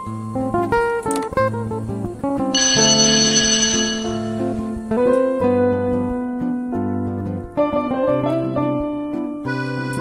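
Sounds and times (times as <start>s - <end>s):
bright bell-like ringing: 2.6s - 4.9s
plucked melody: 2.6s - 5.6s.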